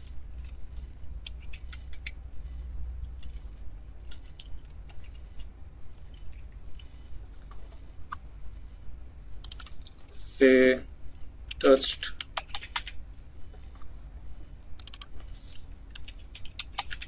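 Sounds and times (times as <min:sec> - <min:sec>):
steady low hum: 0:00.0 - 0:17.0
faint keyboard and mouse clicks: 0:00.4 - 0:08.7, 0:09.4 - 0:10.0, 0:11.5 - 0:17.0.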